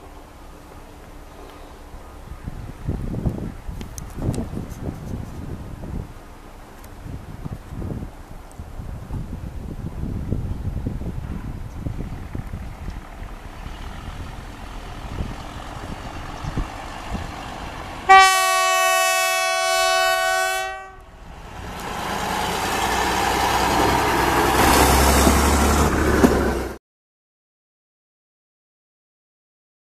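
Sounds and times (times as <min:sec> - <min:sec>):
engine running low: 0:00.0 - 0:19.4, 0:20.9 - 0:26.8
vehicle horn blast: 0:18.1 - 0:21.1
clicks of vehicle on track: 0:23.2 - 0:26.8.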